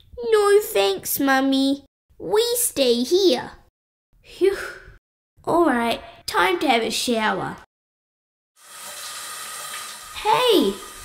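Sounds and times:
shower water spraying: 8.6s - 11.0s.

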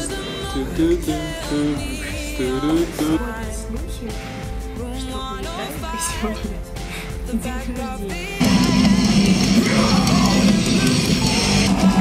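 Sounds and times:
live heavy metal band: 8.4s - 12.0s.

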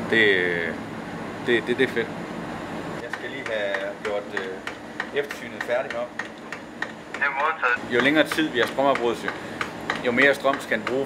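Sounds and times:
man's voice: 7.2s - 7.8s.

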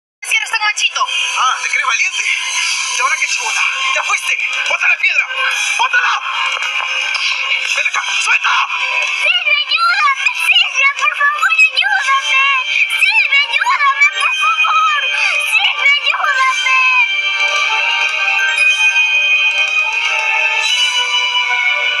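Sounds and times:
music: 0.2s - 22.0s
high electronically altered voice: 1.0s - 17.1s.

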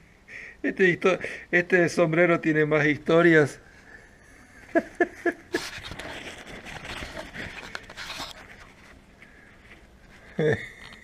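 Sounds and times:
cloth hat rustling: 4.8s - 11.0s.

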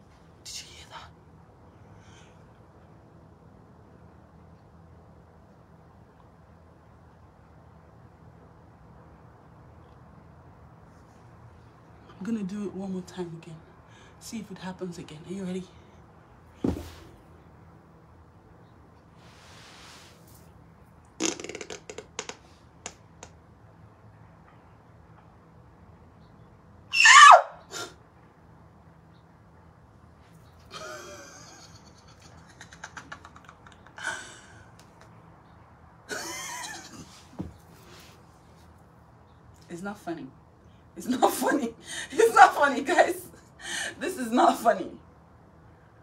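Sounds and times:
thump on carpeted floor: 16.6s - 17.1s, 37.4s - 37.6s
fart-like body noises: 21.2s - 22.2s.

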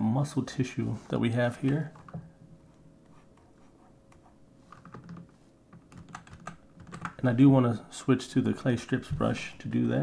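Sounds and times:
faint steady hum: 0.0s - 10.0s
keyboard and mouse clicks: 4.1s - 7.2s.

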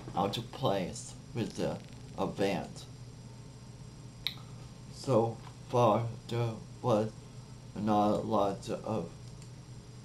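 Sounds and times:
faint low hum: 0.0s - 10.0s
computer mouse click: 9.2s - 9.6s.

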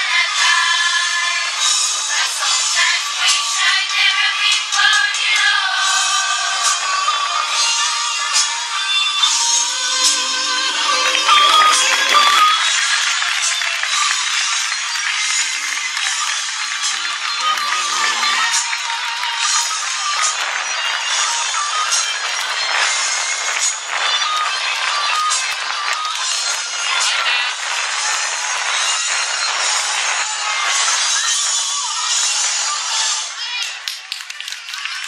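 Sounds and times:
children's choir singing: 0.0s - 27.4s
audience applause: 9.3s - 31.5s, 33.7s - 35.0s.

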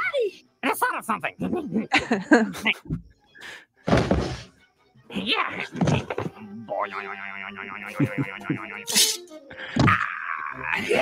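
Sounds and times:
cartoon heavy thud: 3.9s - 4.5s.

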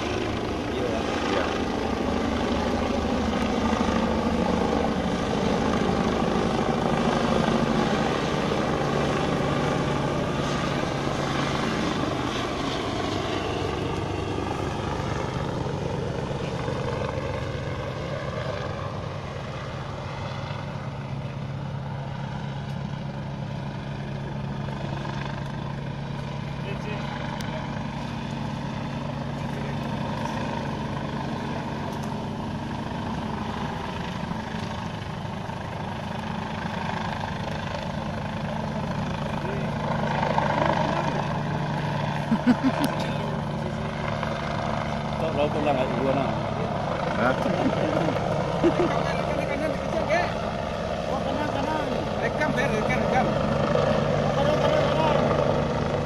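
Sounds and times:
distant helicopter drone: 0.0s - 56.0s.

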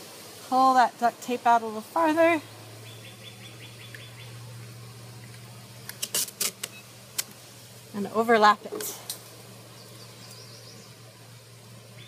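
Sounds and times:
faint low hum: 0.3s - 12.0s
tape pulled off roll: 5.2s - 7.4s.

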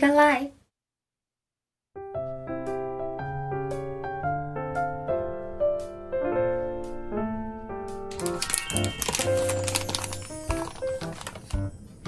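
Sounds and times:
background piano music: 2.0s - 12.0s
plastic pouch crinkling: 8.1s - 11.6s.

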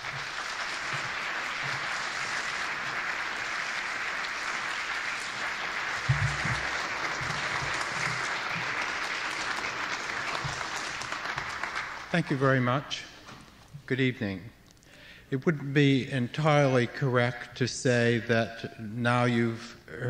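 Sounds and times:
audience applause: 0.0s - 12.6s.

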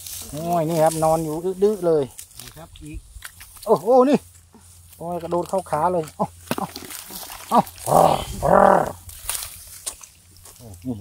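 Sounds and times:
person exclaiming loudly: 7.5s - 9.0s.

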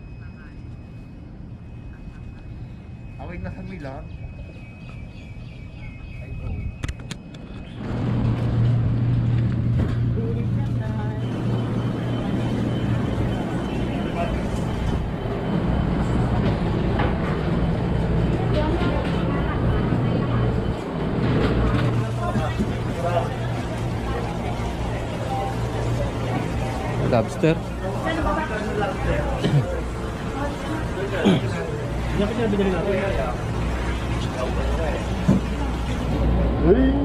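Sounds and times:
low machine hum: 0.0s - 37.0s
voices: 0.0s - 37.0s.

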